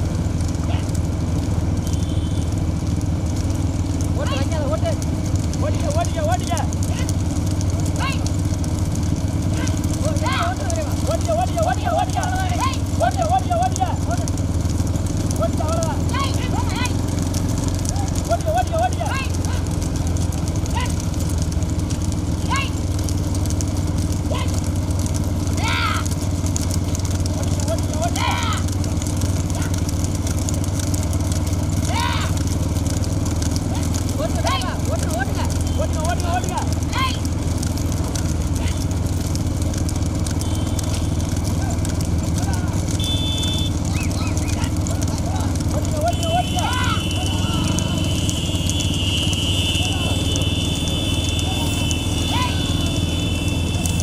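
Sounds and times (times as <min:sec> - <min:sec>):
motorcycles running at low speed: 0:00.0 - 0:54.0
men shouting: 0:09.4 - 0:14.4, 0:15.4 - 0:17.1, 0:17.8 - 0:19.8, 0:25.5 - 0:26.2, 0:27.8 - 0:28.8, 0:31.8 - 0:32.6, 0:41.4 - 0:54.0.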